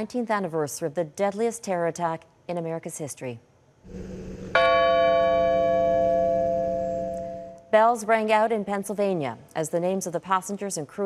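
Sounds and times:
large bell ringing: 4.5 - 7.7.

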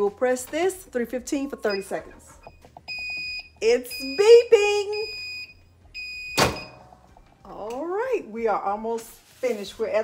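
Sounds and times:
timer beeps: 1.4 - 6.8.

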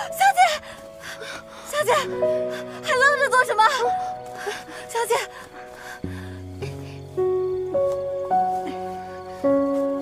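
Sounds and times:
dramatic music sustained notes: 0.0 - 10.0.

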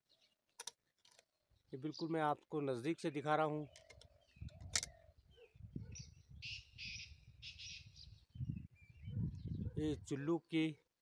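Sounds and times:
small birds chirping: 0.0 - 11.0
low wind rumble: 4.3 - 10.1.

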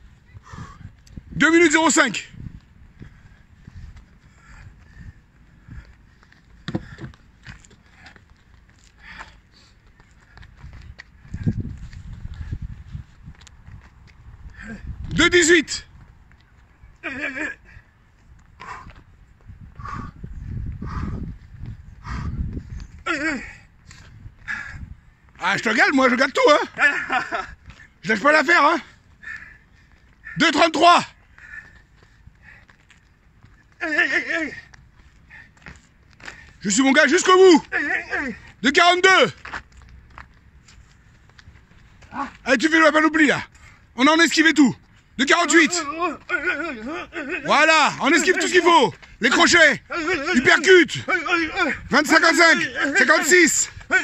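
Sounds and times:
light footsteps tapping: 2.5 - 15.3, 15.9 - 17.0, 23.8 - 54.0.

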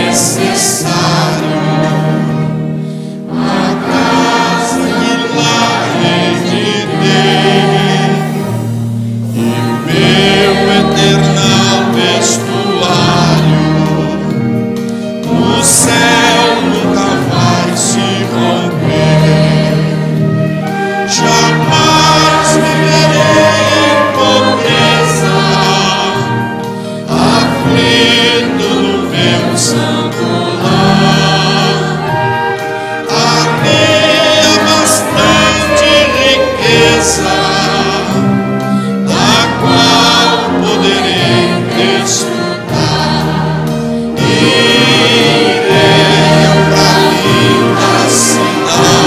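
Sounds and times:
choir singing a hymn: 0.0 - 49.0
string orchestra: 0.0 - 49.0.

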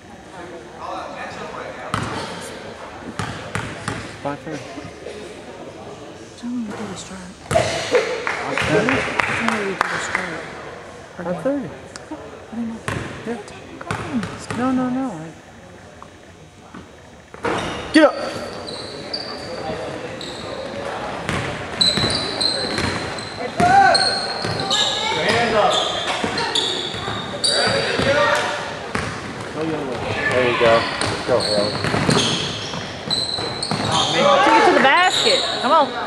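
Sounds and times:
spectators' voices: 0.0 - 36.0
sneakers squeaking: 1.9 - 5.2, 6.6 - 9.7, 12.8 - 14.8, 16.8 - 36.0.

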